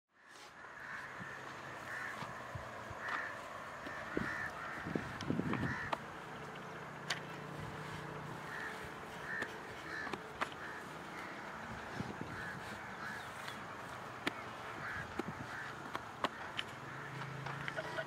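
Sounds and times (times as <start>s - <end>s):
crows cawing: 0.1s - 18.0s.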